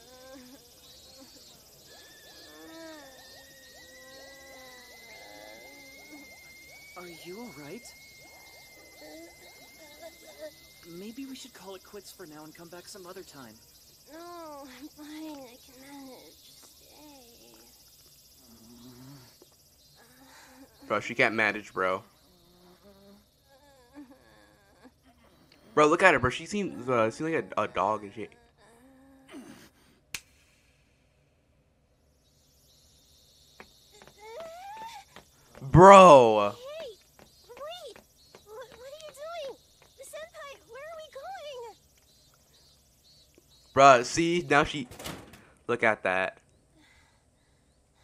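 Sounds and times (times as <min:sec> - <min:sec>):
faint wavering tones: 0:00.0 - 0:28.3.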